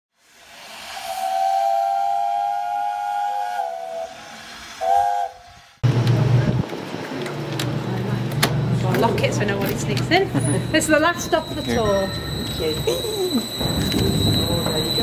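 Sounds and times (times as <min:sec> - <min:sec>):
steam whistle blowing: 0:00.2 - 0:05.8, 0:11.1 - 0:15.0.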